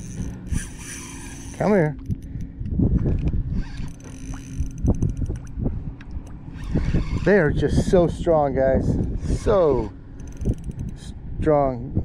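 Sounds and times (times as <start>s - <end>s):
wind and water rumble: 0.0s - 12.0s.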